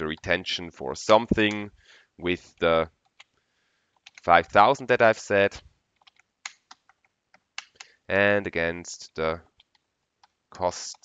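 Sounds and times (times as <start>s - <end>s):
computer keyboard keystrokes: 4.0s - 4.3s, 6.0s - 7.9s.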